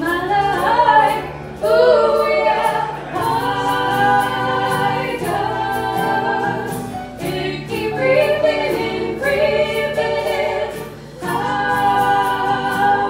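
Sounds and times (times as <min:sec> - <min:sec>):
acoustic guitar: 0:00.0 - 0:13.0
women singing in harmony: 0:00.0 - 0:13.0.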